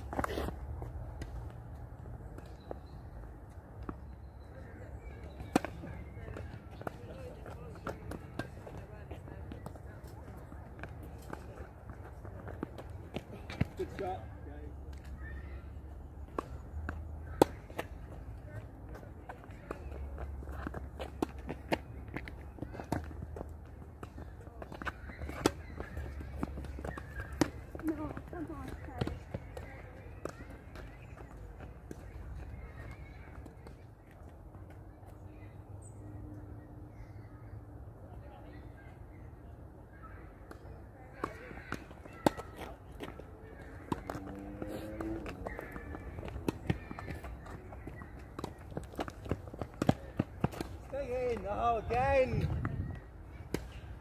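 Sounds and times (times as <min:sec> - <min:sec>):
tennis ball bouncing: 0:05.2 - 0:14.0, 0:16.2 - 0:33.8, 0:40.5 - 0:51.4
footsteps on hard court: 0:16.8 - 0:33.5, 0:41.2 - 0:51.4
wind rumble on microphone: 0:52.3 - 0:53.2.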